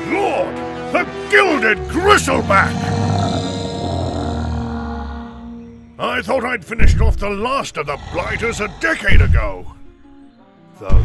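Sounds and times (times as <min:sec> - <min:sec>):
background music: 0:00.0 - 0:11.0
deep monster roar: 0:01.8 - 0:06.0, 0:07.8 - 0:09.2.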